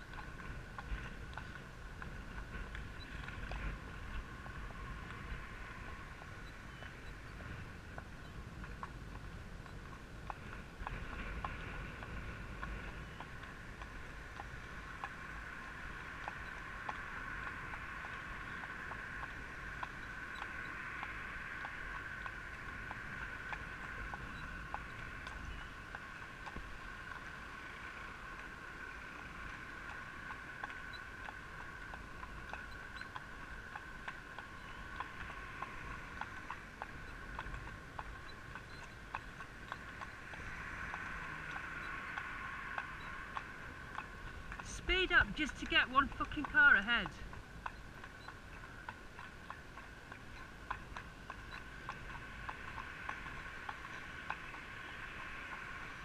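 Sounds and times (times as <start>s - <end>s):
hooves clopping on tarmac: 0.0s - 56.0s
wind rumble on microphone: 0.0s - 56.0s.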